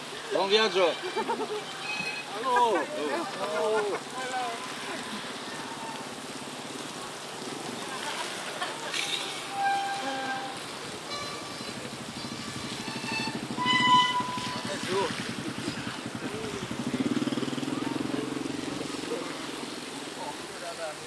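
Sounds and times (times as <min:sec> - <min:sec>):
vehicle engine pulsing: 0:10.6 - 0:20.2.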